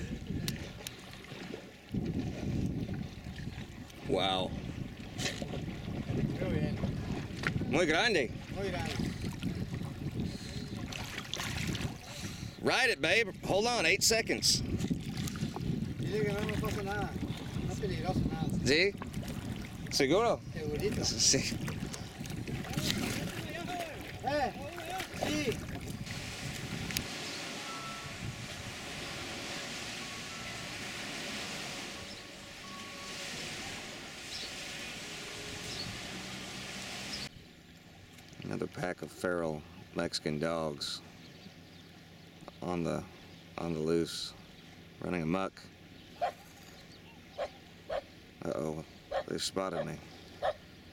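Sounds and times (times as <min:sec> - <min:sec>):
steady low boat rumble: 0:00.0 - 0:50.9
dogs barking: 0:46.2 - 0:46.4, 0:47.4 - 0:48.1, 0:49.1 - 0:50.6.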